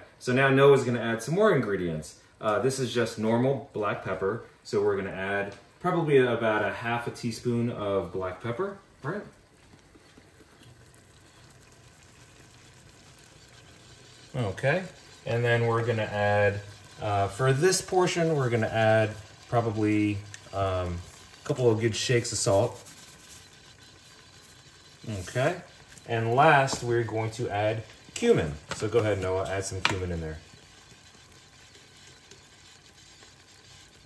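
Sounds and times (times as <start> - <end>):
food sizzling in a pot: 9.3 - 34.0.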